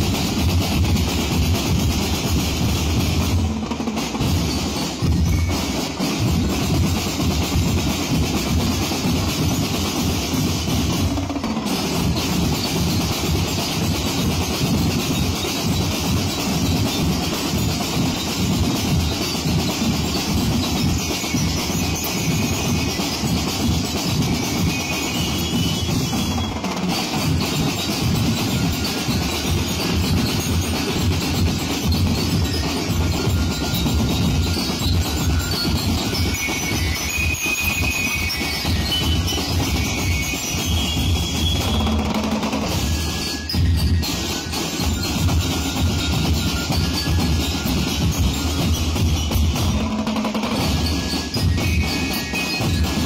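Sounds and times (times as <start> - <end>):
bass drums and snare drums: 0.0 - 53.0.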